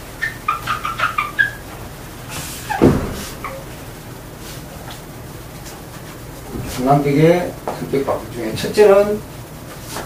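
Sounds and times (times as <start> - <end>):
whiteboard eraser squeaking: 0.0 - 1.8, 2.4 - 3.8.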